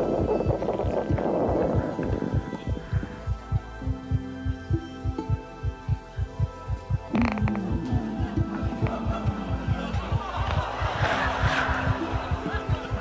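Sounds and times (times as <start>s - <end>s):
heartbeat thumps: 0.0s - 13.0s
low steady tone: 0.0s - 13.0s.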